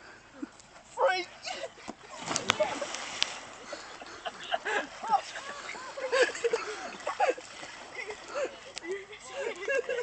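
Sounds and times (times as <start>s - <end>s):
person splashing into water: 2.1s - 3.6s.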